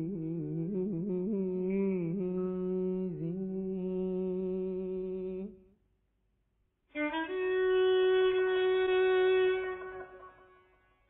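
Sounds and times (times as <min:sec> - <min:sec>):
solo violin: 0:06.9 - 0:11.0.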